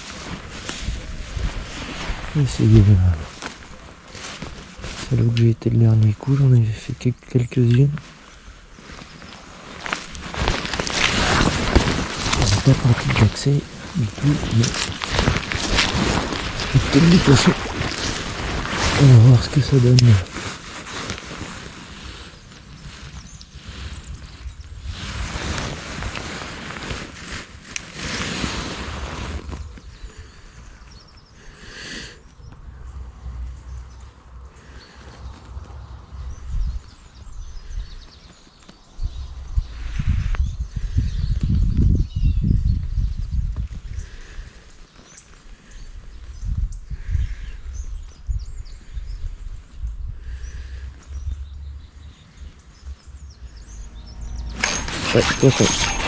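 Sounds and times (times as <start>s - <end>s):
wind rumble on microphone: 0.0s - 5.3s, 8.4s - 31.1s, 32.4s - 44.9s, 45.7s - 56.0s
handling rustle: 0.0s - 6.6s, 7.6s - 29.9s, 53.5s - 56.0s.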